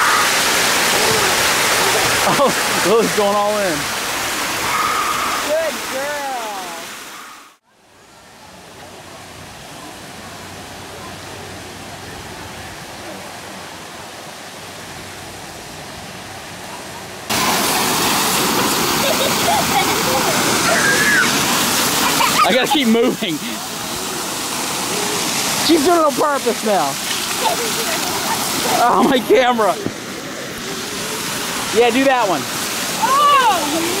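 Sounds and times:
fountain water jets spraying: 0.0 - 34.0
fountain water splashing into pool: 0.0 - 34.0
children's voices: 27.3 - 29.0, 33.0 - 34.0.

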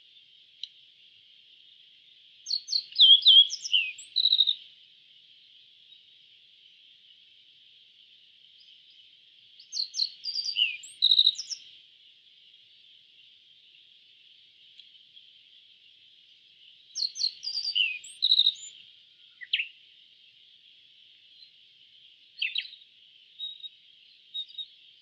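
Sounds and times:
steady high hiss: 0.0 - 25.0
bird singing whistled notes: 2.4 - 4.7, 8.6 - 11.8, 16.7 - 19.8, 22.3 - 25.0.

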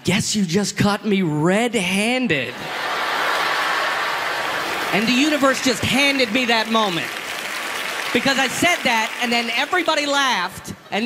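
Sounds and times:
audience laughing: 2.5 - 7.0
audience applauding: 2.7 - 10.5.

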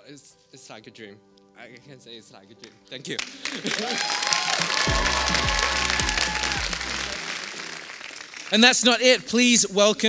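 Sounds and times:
audience applause: 3.2 - 8.8
music with held chords: 4.6 - 7.9
deep sliding bass line: 4.9 - 7.2.

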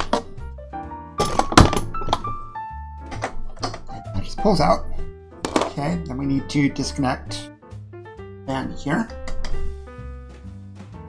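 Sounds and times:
background music: 0.0 - 11.0
knocks and thunk of computer part: 1.2 - 2.3, 5.4 - 5.8.

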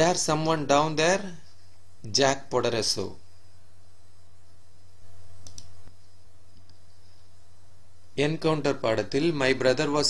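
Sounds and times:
steady low hum: 0.0 - 10.0
faint short clicks: 5.4 - 6.0.

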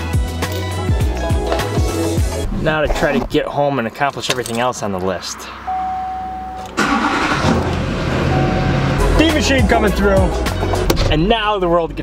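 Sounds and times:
steady electronic beep: 5.6 - 6.7, 8.3 - 9.1
diesel engine cranking and running: 6.6 - 9.1.

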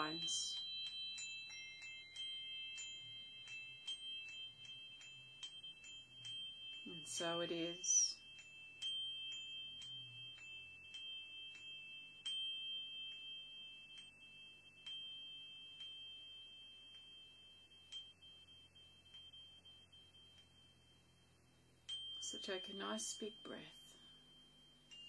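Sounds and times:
chime struck with mallet: 0.0 - 20.9.

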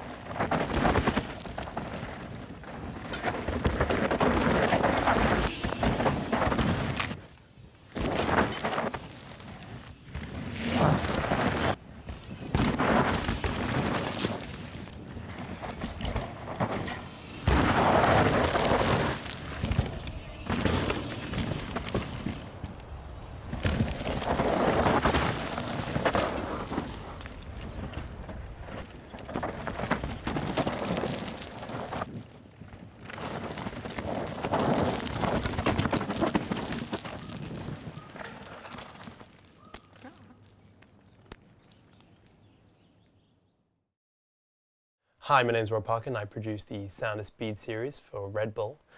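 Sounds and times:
tyres crunching and skidding on dirt: 0.0 - 42.3.

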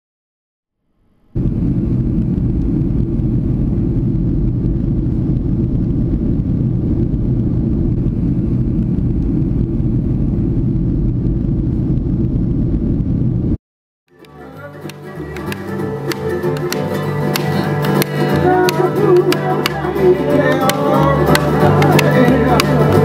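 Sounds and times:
jet airliner cabin rumble: 1.3 - 13.6.

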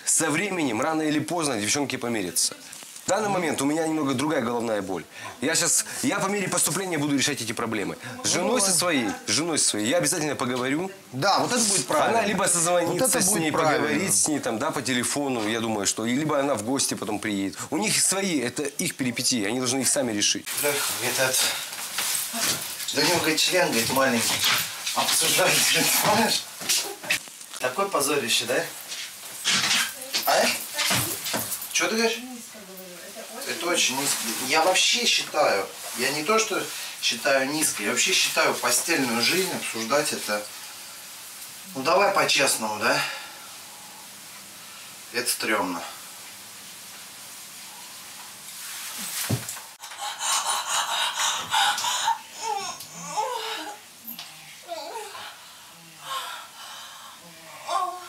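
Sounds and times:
man saying questioning word: 11.6 - 14.2
fabric rustling: 20.5 - 27.6
person gasping breath: 49.8 - 53.8.

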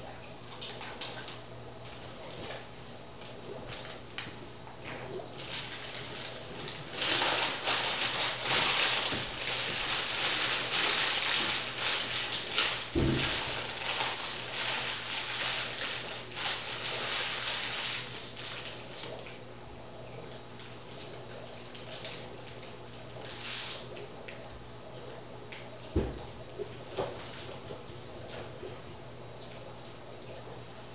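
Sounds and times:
plastic bag crinkling: 5.4 - 19.4, 20.9 - 24.0
thump: 13.0 - 13.3, 26.0 - 26.2.

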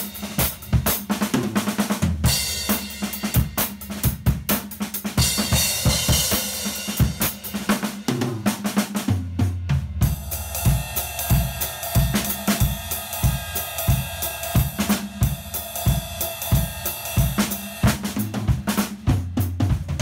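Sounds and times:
drum kit playing: 0.0 - 20.0.

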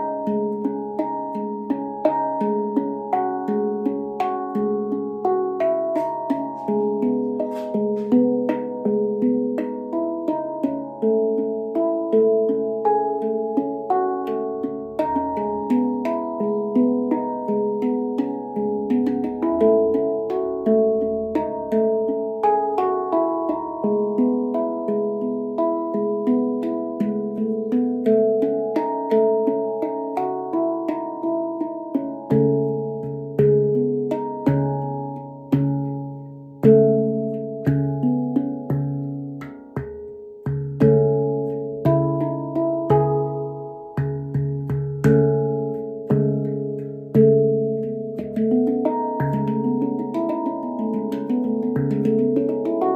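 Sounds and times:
handpan notes ringing: 0.0 - 52.9.

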